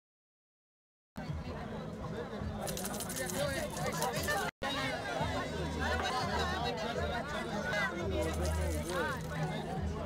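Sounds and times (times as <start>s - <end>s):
people talking over one another: 1.2s - 10.0s.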